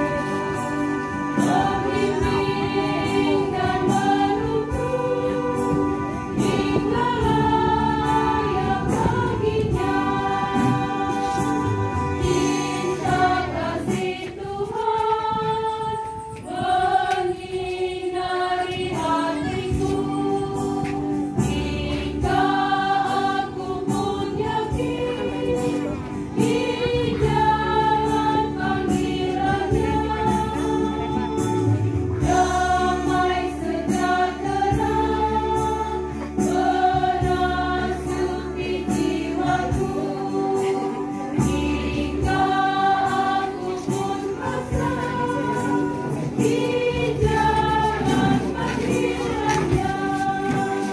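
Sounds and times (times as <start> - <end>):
choir singing a hymn: 0.0 - 50.9.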